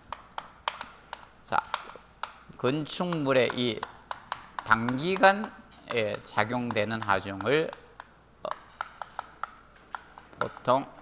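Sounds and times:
chalk tapping on blackboard: 0.0s - 11.0s.

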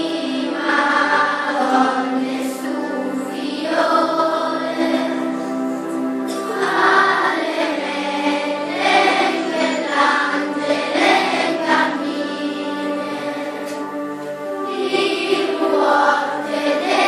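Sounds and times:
children's choir singing: 0.0s - 17.0s.

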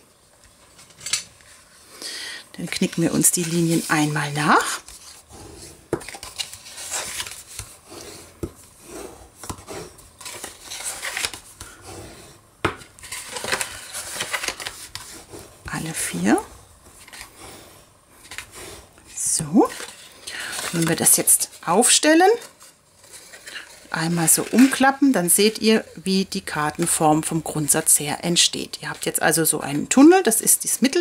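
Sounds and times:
bone folder scraping paper: 2.9s - 12.4s
paper rustling: 5.9s - 11.8s, 12.8s - 17.6s, 19.5s - 25.8s.

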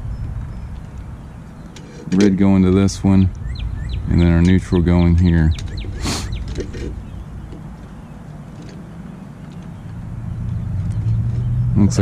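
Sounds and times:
low outdoor rumble: 0.0s - 12.0s
steady low hum: 0.0s - 12.0s.

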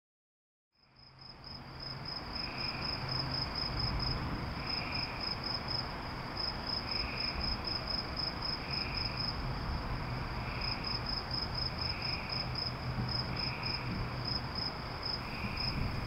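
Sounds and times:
crickets chirping: 0.8s - 16.0s
soft outdoor hiss: 0.8s - 16.0s.

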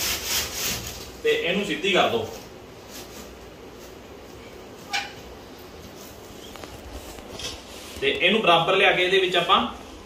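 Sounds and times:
tape sliding through woven strips: 0.0s - 1.2s
man speaking: 1.2s - 2.4s.

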